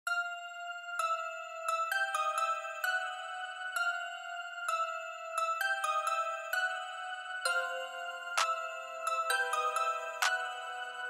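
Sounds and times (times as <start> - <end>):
bell-like melody: 0.1 - 11.0.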